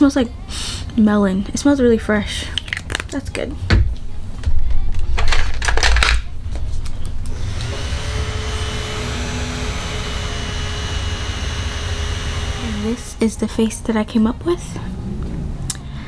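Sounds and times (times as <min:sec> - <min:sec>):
handheld fan whirring: 0:06.8 - 0:13.8.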